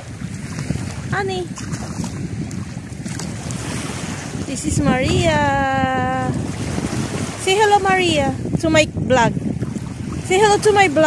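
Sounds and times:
calm sea: 0.0s - 11.0s
wind buffeting microphone: 0.0s - 11.0s.

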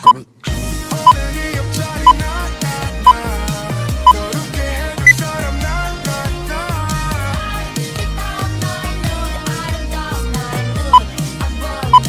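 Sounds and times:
pop music with bass beat: 0.0s - 12.0s.

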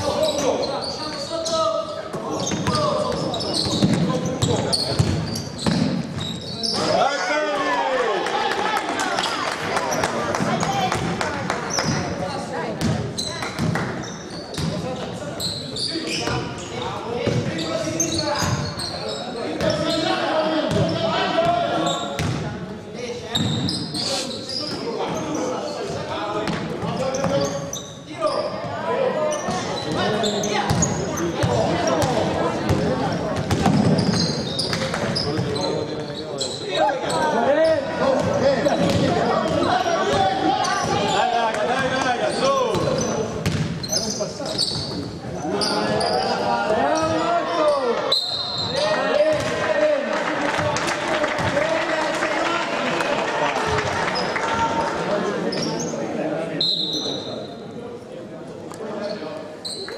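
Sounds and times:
people shouting and chatting: 0.0s - 59.9s
basketball bouncing on wooden court: 2.4s - 6.3s, 12.8s - 13.9s, 17.2s - 17.5s, 22.2s - 22.4s, 32.7s - 34.8s, 38.2s - 39.7s, 42.7s - 43.7s.

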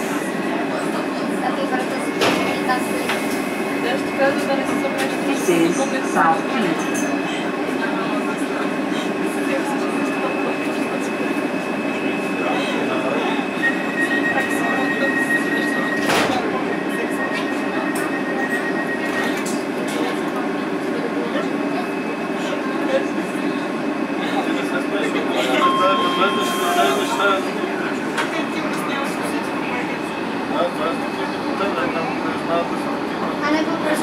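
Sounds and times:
thin high tone: 25.4s - 28.0s.

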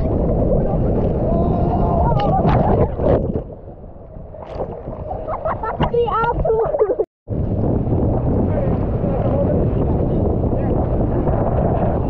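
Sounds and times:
water rushing: 0.0s - 7.1s
wind: 0.0s - 12.0s.

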